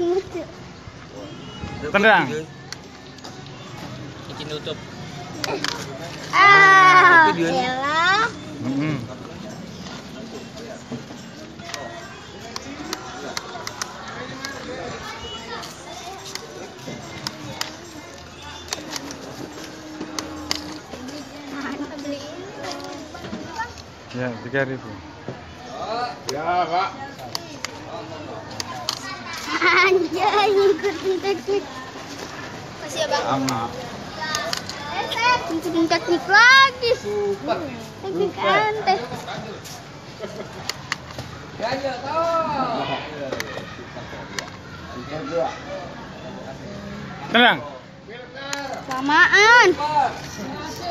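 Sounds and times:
quiet voices: 2.4s - 24.2s, 42.2s - 49.0s
plastic toy clicks and clacks: 11.6s - 14.7s, 16.3s - 20.9s, 28.5s - 29.5s, 34.2s - 34.8s, 40.6s - 41.3s.

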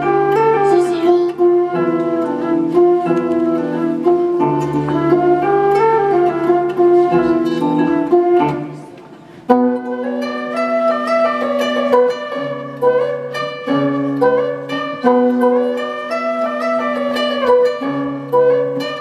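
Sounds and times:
flute melody: 0.0s - 19.0s
plucked harp notes: 0.0s - 19.0s.

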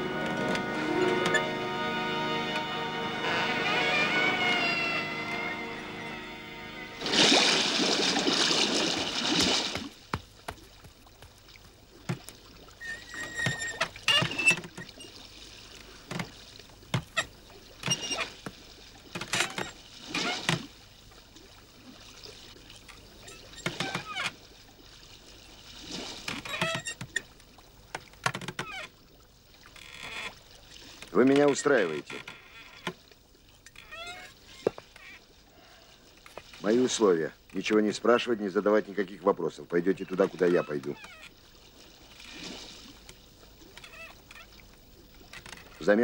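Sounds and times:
water splashing along boat hull: 0.0s - 46.0s.

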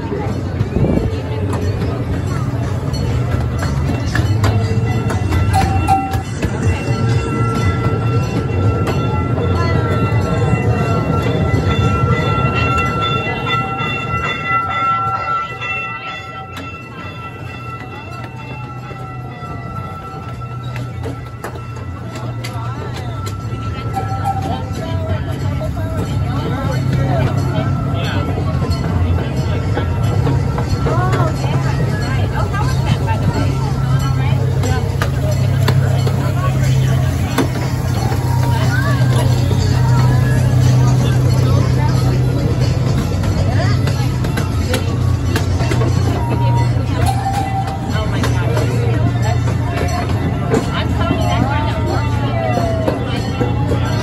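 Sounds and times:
music: 0.0s - 54.0s
small train rumbling: 0.0s - 54.0s
voices: 0.0s - 54.0s.

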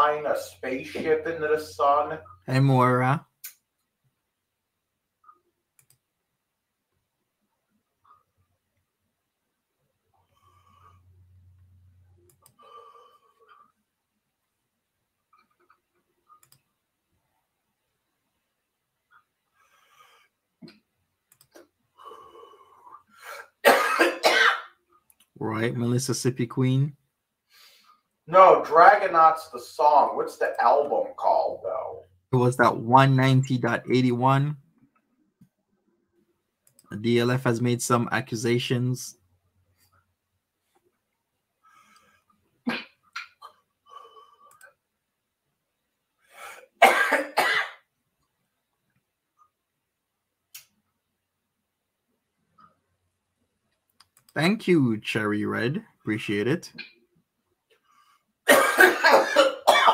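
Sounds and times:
person coughing: 23.3s - 24.8s, 46.8s - 47.8s, 58.5s - 59.9s.

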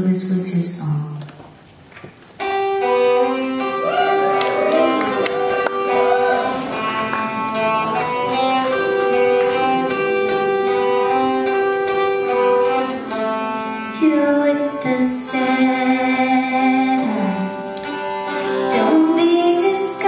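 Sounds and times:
dulcimer melody with drone strings: 5.2s - 20.0s.

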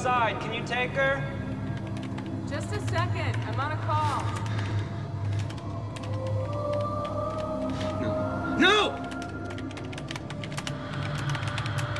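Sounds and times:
computer keyboard typing: 1.7s - 8.0s, 8.9s - 11.9s.

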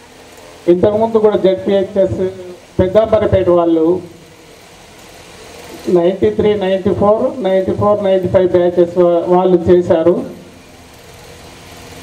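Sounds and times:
man speaking: 0.7s - 4.2s, 5.8s - 10.5s.

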